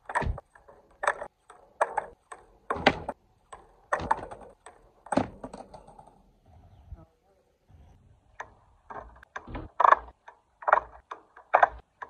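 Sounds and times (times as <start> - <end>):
skateboard clattering on concrete: 0.0 - 6.3.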